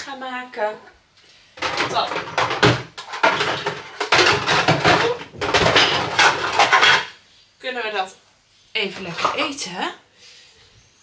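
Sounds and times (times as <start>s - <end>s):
plastic containers and dishes clattering: 1.6s - 7.2s, 8.9s - 9.6s.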